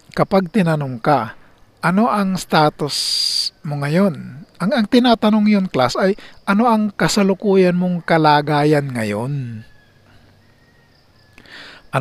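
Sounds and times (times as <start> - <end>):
faint steady tone: 0.0 - 12.0
man lecturing: 0.1 - 9.7.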